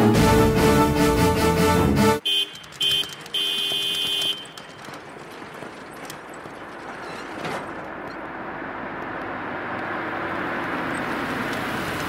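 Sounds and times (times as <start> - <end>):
background music: 0.0 - 2.3
car horn honking: 2.2 - 4.9.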